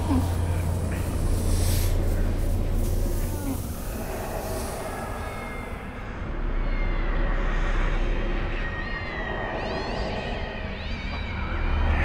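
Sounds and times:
steady low rumble: 0:00.0 - 0:10.8.

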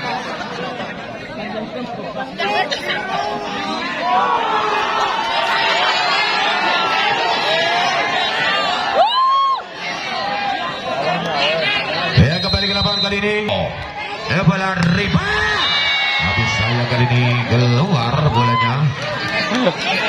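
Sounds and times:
crowd chattering and calling out: 0:00.0 - 0:20.0.

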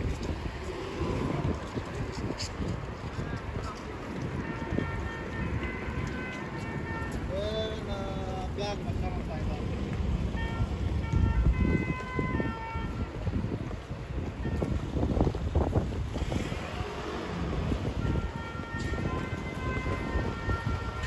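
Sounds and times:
passers-by talking: 0:00.0 - 0:21.0
passing traffic: 0:00.0 - 0:21.0
wind rumbling on microphone: 0:00.0 - 0:21.0.

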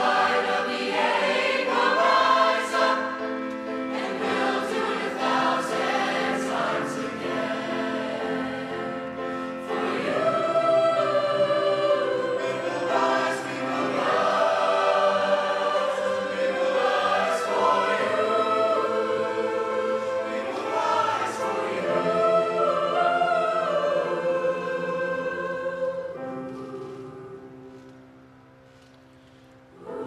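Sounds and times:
mixed choir singing in harmony: 0:00.0 - 0:28.0, 0:29.7 - 0:30.0.

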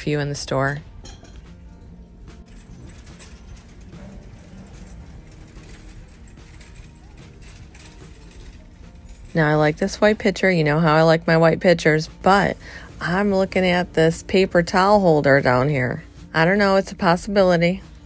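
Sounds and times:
faint background music: 0:00.0 - 0:18.0
light mechanical rattling: 0:00.9 - 0:11.2.

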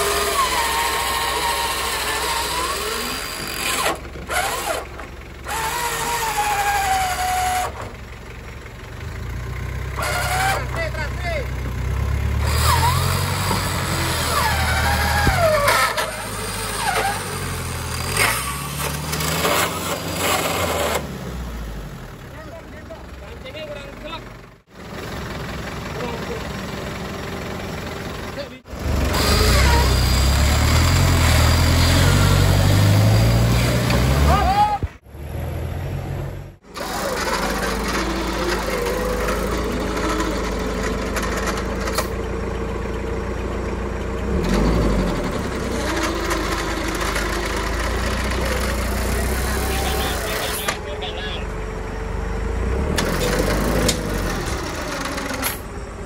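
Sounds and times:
electric winch pulling: 0:00.0 - 0:08.0, 0:36.6 - 0:43.1, 0:53.0 - 0:55.8
off-road engines revving: 0:00.0 - 0:56.0
voices calling out: 0:09.8 - 0:11.7, 0:25.4 - 0:35.0, 0:36.0 - 0:44.6, 0:45.7 - 0:52.2.

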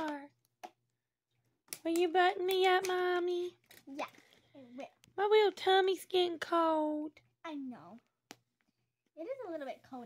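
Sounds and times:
high-pitched childlike voice speaking: 0:03.8 - 0:04.9.

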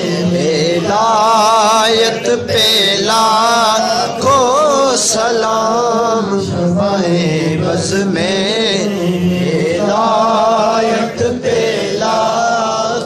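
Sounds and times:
man chanting melodically: 0:00.0 - 0:13.0.

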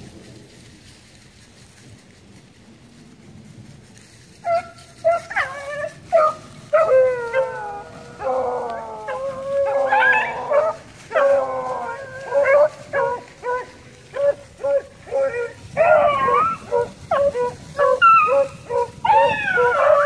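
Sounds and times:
hounds baying and howling: 0:04.3 - 0:20.0.

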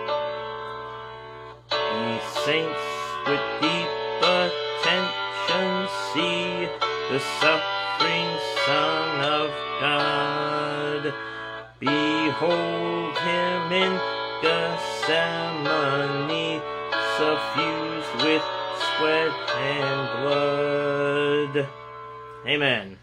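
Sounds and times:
recorded instrumental hymn accompaniment: 0:00.0 - 0:22.7
man singing a hymn: 0:01.7 - 0:21.8.

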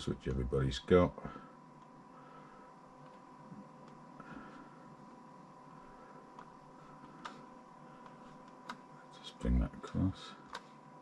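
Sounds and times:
steady electrical hum: 0:00.0 - 0:11.0
computer mouse clicking: 0:06.3 - 0:08.9, 0:09.8 - 0:10.8.

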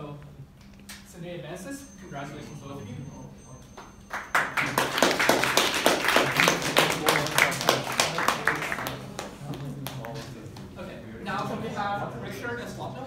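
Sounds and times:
small audience clapping: 0:03.8 - 0:10.7.

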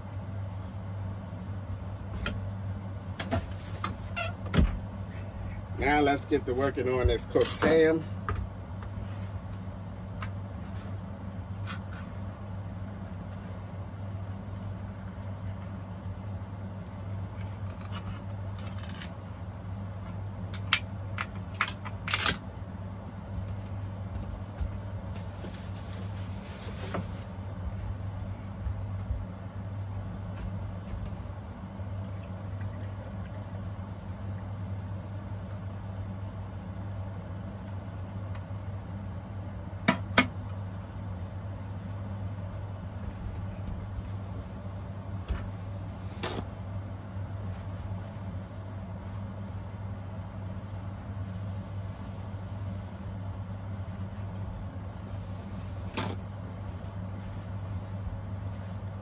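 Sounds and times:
steady low hum: 0:00.0 - 0:59.0
hissing rustle of package: 0:25.1 - 0:27.4.

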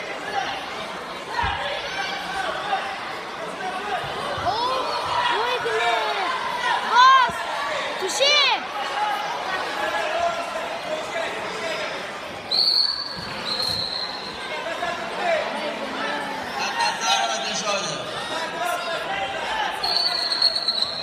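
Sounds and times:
people shouting in echoing hall: 0:00.0 - 0:12.0
high-pitched whistle tones: 0:12.5 - 0:14.4, 0:19.8 - 0:21.0.

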